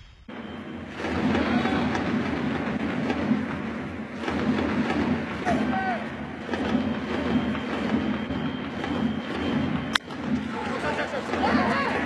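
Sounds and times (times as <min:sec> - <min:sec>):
crowd din: 0:01.0 - 0:06.8, 0:10.0 - 0:12.0.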